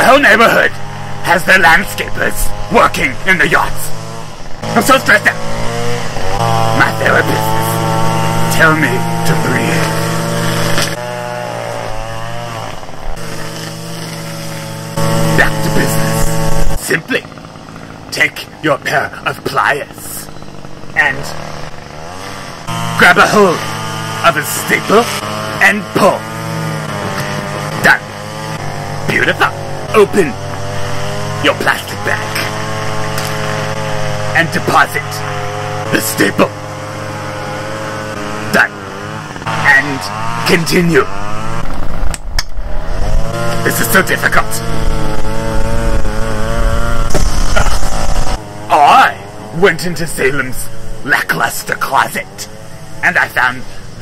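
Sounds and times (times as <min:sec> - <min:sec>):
small petrol engine running: 0:00.0 - 0:54.0.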